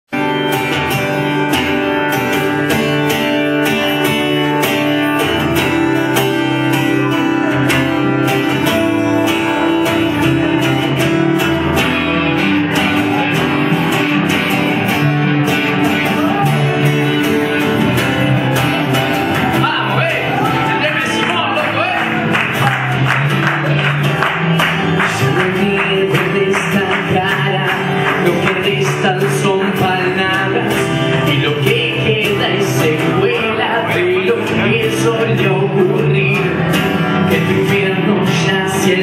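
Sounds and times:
acoustic guitars strumming: 0.1 - 39.0
person singing: 22.6 - 39.0.

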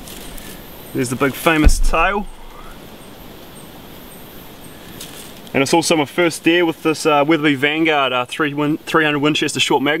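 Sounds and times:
soft background hiss: 0.0 - 10.0.

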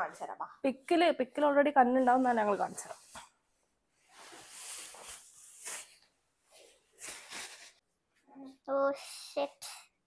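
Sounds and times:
fabric swishing: 4.0 - 7.8.

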